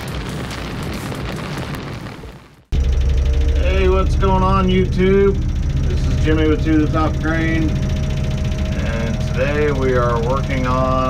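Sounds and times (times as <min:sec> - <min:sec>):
diesel engine idling: 0:02.8 - 0:11.0
noisy intro sound effect: 0:02.8 - 0:11.0.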